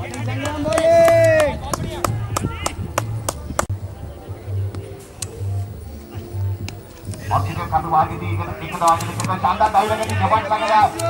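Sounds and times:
held shout: 0.1 - 2.8.

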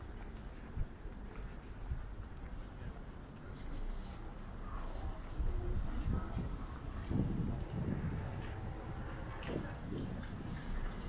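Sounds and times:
faint voices: 2.3 - 11.0
wind on microphone: 5.0 - 11.0
footsteps on pavement: 5.2 - 11.0.

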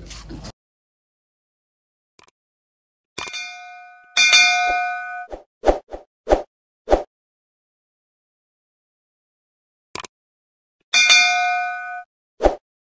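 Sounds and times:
bell-like ding: 3.2 - 5.3, 11.0 - 12.1
ringing chime: 3.3 - 5.3, 11.0 - 12.1.

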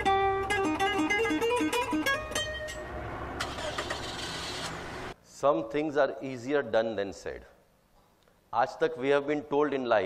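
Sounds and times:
road noise: 2.0 - 5.2.

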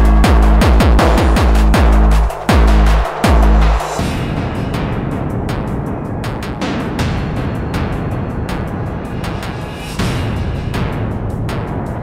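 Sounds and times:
industrial techno track: 0.0 - 12.0
rising noise sweep: 3.9 - 11.9.

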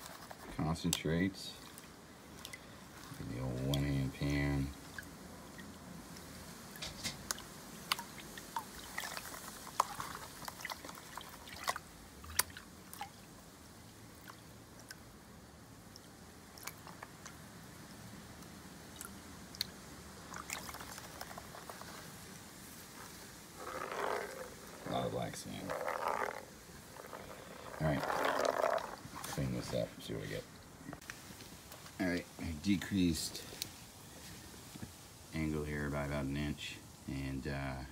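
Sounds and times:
water swishing and sloshing: 0.0 - 15.2, 15.8 - 18.1, 18.8 - 31.7
gravel clicking against plastic: 20.4 - 22.2, 23.0 - 29.4.

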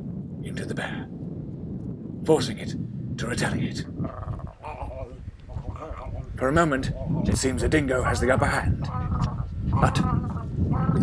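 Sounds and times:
wavering vocal cries: 8.7 - 11.0.

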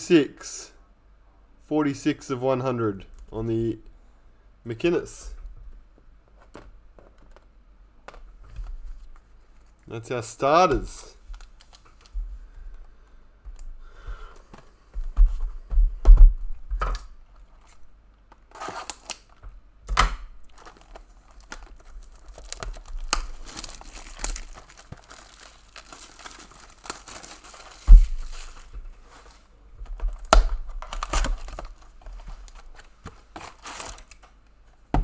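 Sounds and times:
wrappers tearing and crinkling: 18.5 - 19.4, 20.5 - 29.4, 30.1 - 34.2
cardboard rustling: 20.5 - 34.2.

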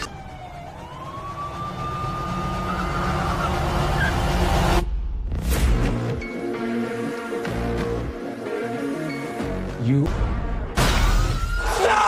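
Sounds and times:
police siren: 0.0 - 4.8.

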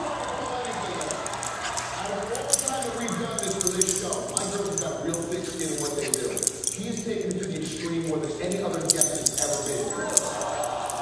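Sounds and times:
voices talking: 0.5 - 10.9
dog collar tags jingling: 0.8 - 11.0
small dogs play-fighting: 1.0 - 4.8, 5.5 - 8.3.

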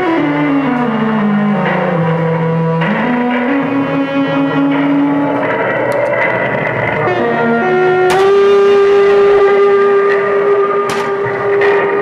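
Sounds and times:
harsh electronic noise: 0.0 - 12.0
high whine: 0.0 - 12.0
low hum: 0.0 - 12.0.

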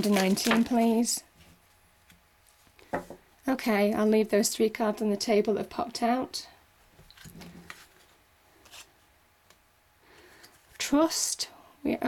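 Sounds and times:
cards rustling and clicking: 0.0 - 1.0, 7.0 - 8.9.

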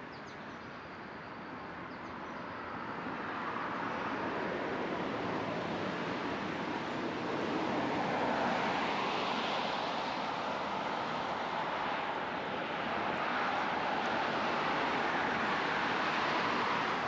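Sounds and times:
cars passing: 2.7 - 17.0.

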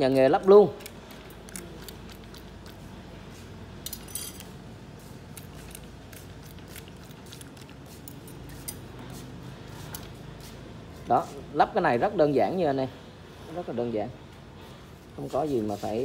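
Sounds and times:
low background noise: 0.0 - 16.0
light metal clicks and clinks: 3.8 - 4.6.

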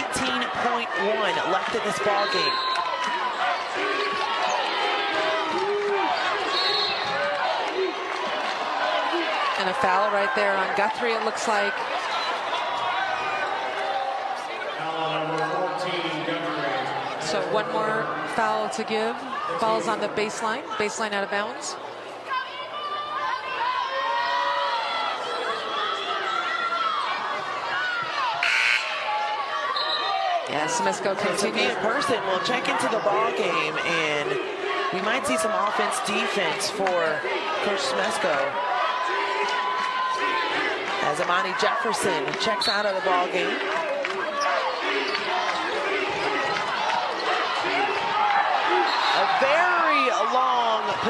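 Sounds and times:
crowd shouting: 0.0 - 20.1, 22.2 - 51.0.

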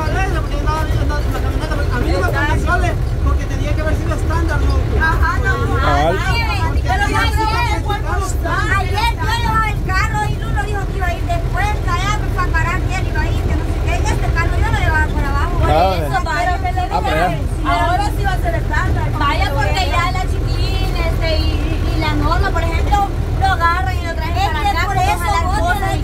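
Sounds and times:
people talking: 0.0 - 26.0
truck rumbling on dirt road: 0.0 - 26.0.

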